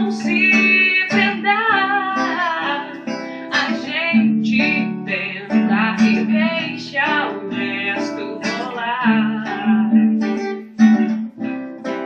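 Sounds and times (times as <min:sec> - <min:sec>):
woman singing a ballad: 0:00.0 - 0:10.6
acoustic guitar: 0:00.0 - 0:12.0.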